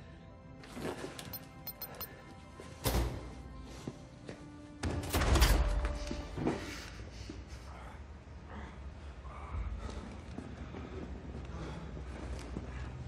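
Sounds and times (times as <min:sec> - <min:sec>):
tense film score: 0:00.0 - 0:13.0.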